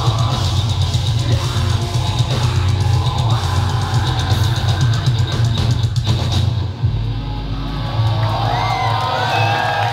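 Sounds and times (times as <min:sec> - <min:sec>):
distorted guitars: 0:00.0 - 0:08.1
heavy drums: 0:00.0 - 0:09.9
crowd cheering and whistling: 0:06.9 - 0:09.9.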